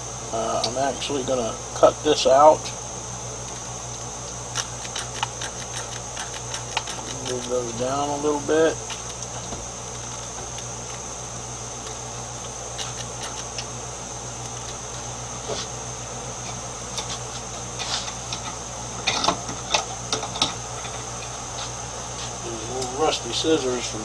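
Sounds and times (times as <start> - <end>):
machine hum: 0.0 - 24.0
small objects clicking and tapping: 4.3 - 7.5.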